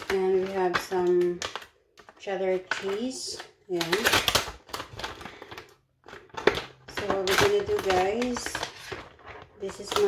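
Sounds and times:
plastic packet crinkling: 0.0s - 10.0s.

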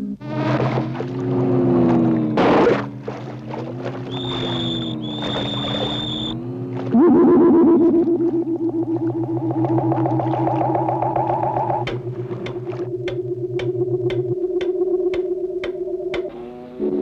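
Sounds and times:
wavering tones over low drone: 0.0s - 17.0s
high whistle-like tone: 4.1s - 6.4s
sliding tone with fast warble: 4.1s - 16.3s.

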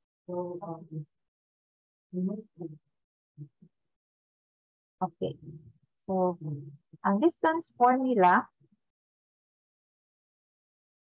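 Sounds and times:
woman speaking: 0.3s - 1.0s, 2.2s - 2.7s, 5.0s - 8.4s.

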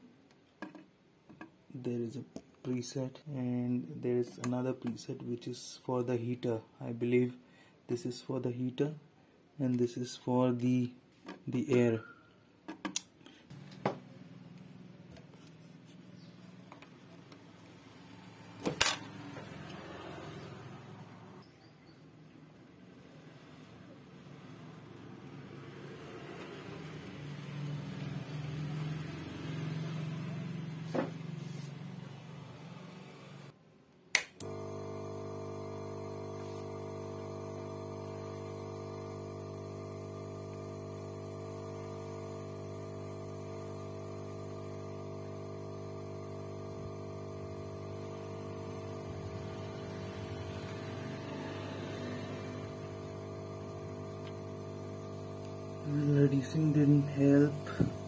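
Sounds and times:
sharp click: 34.1s - 34.6s
air pump humming: 34.4s - 58.0s.

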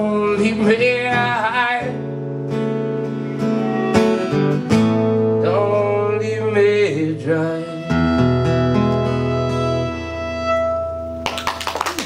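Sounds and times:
acoustic guitar chord ringing: 0.0s - 11.3s
electric violin long bowed note: 3.1s - 5.0s, 7.3s - 11.0s.

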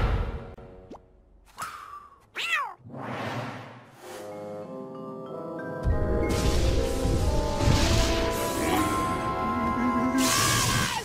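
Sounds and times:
cartoon cat yelp: 2.3s - 2.8s.

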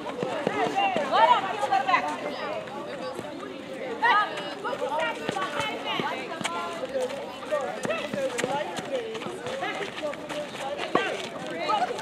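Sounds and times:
players calling and shouting: 0.0s - 12.0s.

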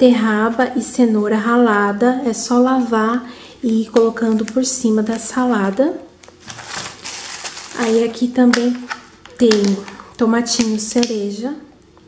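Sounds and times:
plastic bags crinkling: 3.6s - 11.0s.

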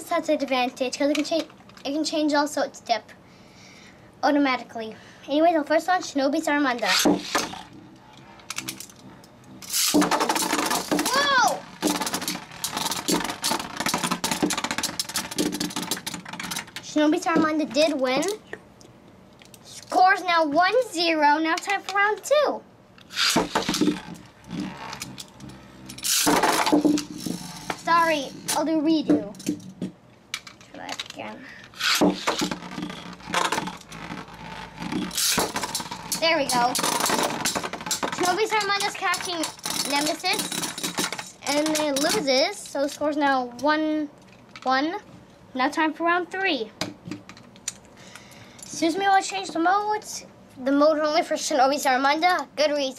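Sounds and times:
spinning tops clashing and clicking: 6.8s - 18.4s, 23.0s - 28.6s, 29.3s - 43.7s.

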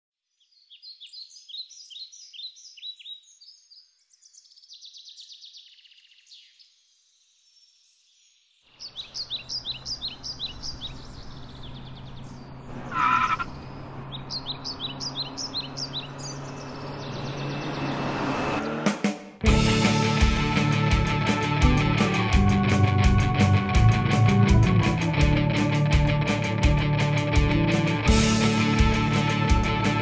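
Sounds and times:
small songbirds chirping: 0.2s - 18.1s.

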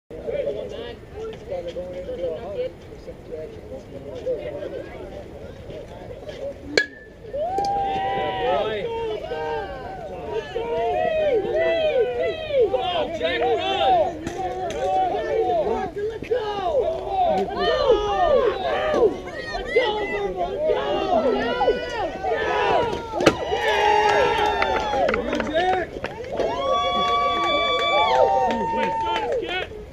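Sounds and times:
metal bat hitting ball: 6.8s - 7.1s
spectators shouting and cheering: 6.8s - 29.9s.

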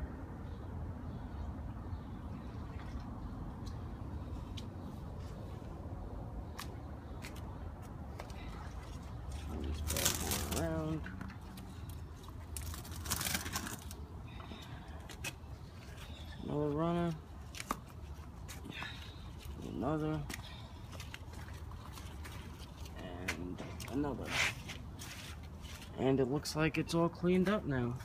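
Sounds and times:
leaves rustling: 8.4s - 14.4s
person's voice: 9.5s - 11.7s, 16.4s - 17.2s.

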